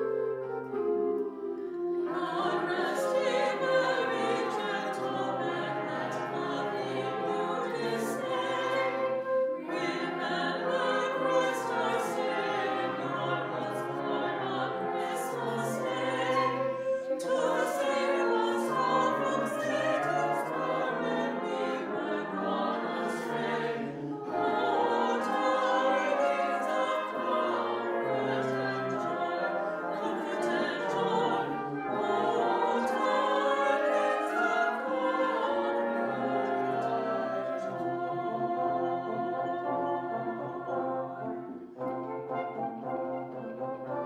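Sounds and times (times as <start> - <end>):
mixed choir singing: 0.0 - 44.0
wind band accompanying: 0.0 - 44.0.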